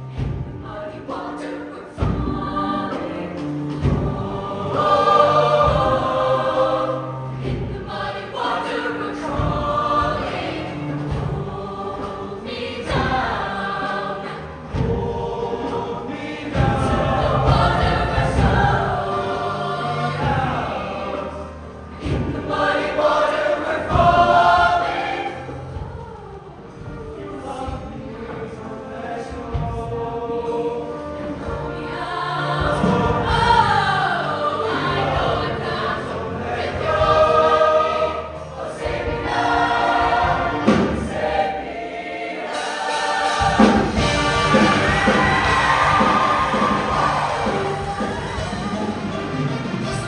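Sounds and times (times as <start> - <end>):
choir singing: 0.0 - 50.0
instrumental backing music: 0.0 - 50.0.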